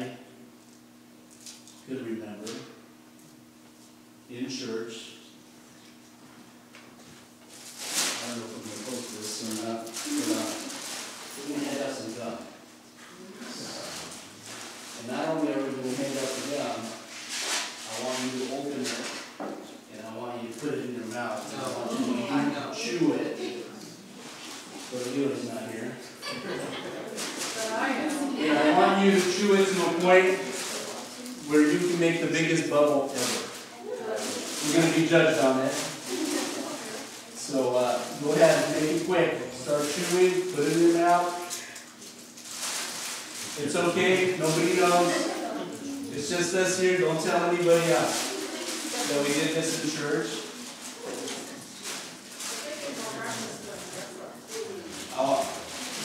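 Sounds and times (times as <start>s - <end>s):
plastic bag crinkling: 7.5s - 12.2s, 13.7s - 19.2s, 24.2s - 25.9s, 27.1s - 56.0s
man speaking: 15.0s - 17.1s, 17.8s - 19.2s, 19.8s - 24.0s, 24.8s - 26.2s, 28.4s - 33.6s, 34.5s - 36.0s, 37.4s - 41.7s, 43.5s - 48.3s, 49.0s - 50.6s, 54.6s - 55.7s.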